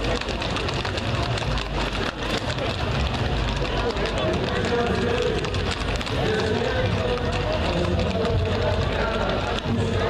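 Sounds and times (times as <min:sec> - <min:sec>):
horse hooves clopping on asphalt: 0:00.0 - 0:10.0
indistinct crowd voices: 0:00.0 - 0:10.0.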